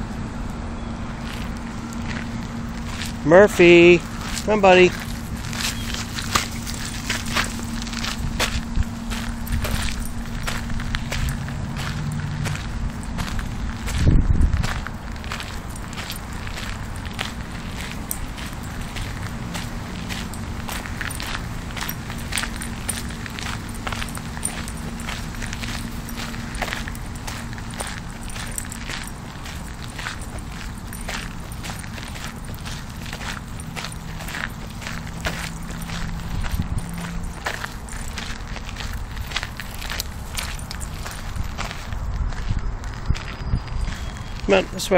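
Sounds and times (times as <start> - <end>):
footsteps crunching on gravel: 1.2 - 44.9.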